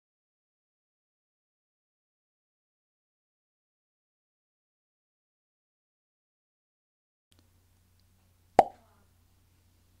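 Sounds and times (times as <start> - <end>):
faint low hum: 7.4 - 10.0.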